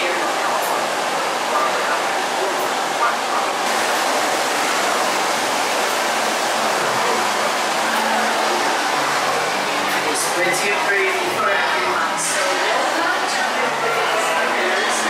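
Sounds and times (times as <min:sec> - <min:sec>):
steady rushing noise: 0:00.0 - 0:13.7
faint indistinct voices: 0:00.0 - 0:15.0.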